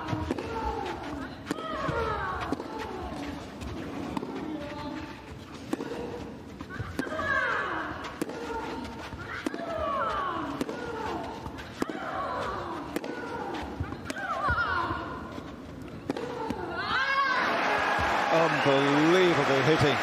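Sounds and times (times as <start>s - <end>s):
racket hitting ball: 0.1s - 5.0s, 8.1s - 14.4s.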